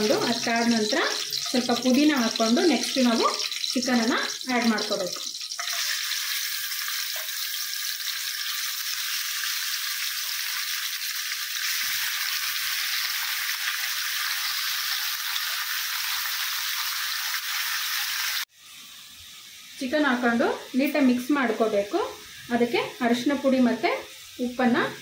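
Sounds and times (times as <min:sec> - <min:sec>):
chicken sizzling in hot oil: 0:00.0 - 0:25.0.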